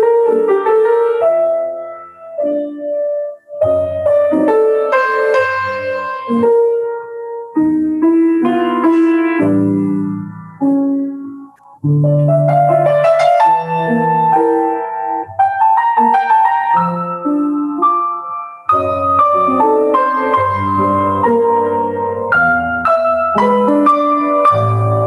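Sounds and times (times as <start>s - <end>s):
solo grand piano: 0.0s - 25.0s.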